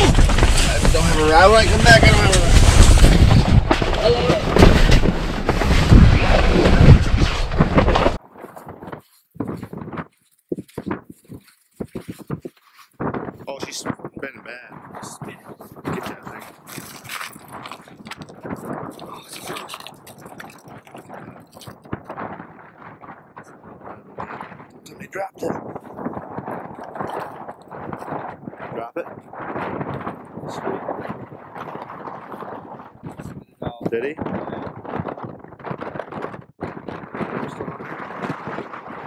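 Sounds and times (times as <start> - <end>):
wind noise on microphone: 0.0 - 39.0.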